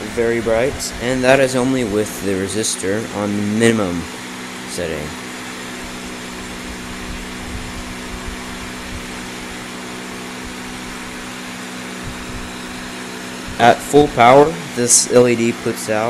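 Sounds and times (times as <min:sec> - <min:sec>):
computer cooling fan humming: 0:00.0 - 0:16.0.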